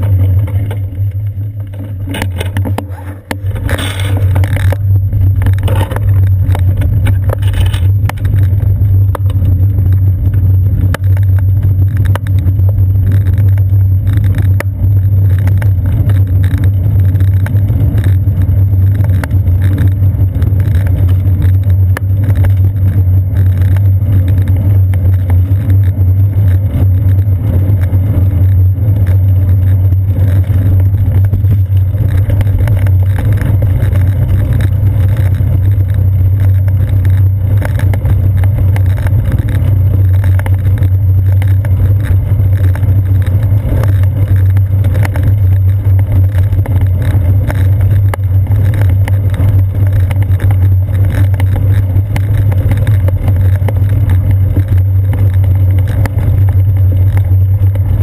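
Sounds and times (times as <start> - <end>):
road vibration: 0.0 - 58.0.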